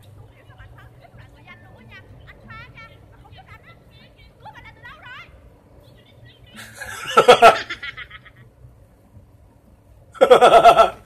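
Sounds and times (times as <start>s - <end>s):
man laughing: 6.6s - 8.5s, 10.2s - 11.0s.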